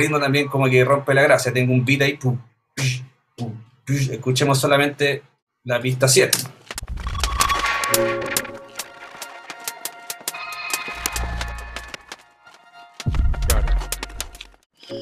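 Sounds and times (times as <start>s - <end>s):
stuttering electronic clicks and blips: 6.8s - 12.1s
low bass thuds: 13.1s - 14.3s.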